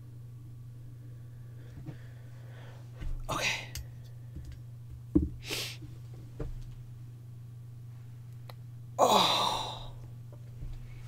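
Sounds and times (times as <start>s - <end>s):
steady low hum: 0.0s - 11.0s
woman sighing: 9.0s - 10.0s.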